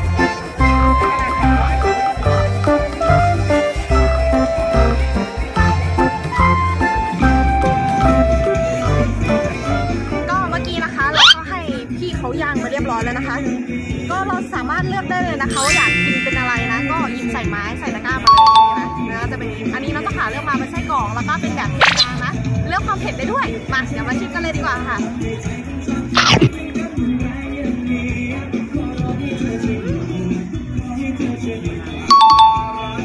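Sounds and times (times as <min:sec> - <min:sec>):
background music: 0:00.0 - 0:33.0
two-note ding-dong chime: 0:15.5 - 0:19.4, 0:32.1 - 0:33.0.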